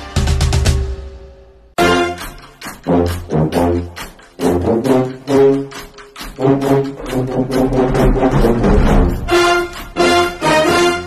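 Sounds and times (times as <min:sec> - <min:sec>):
brass band playing: 0:01.8 - 0:11.0.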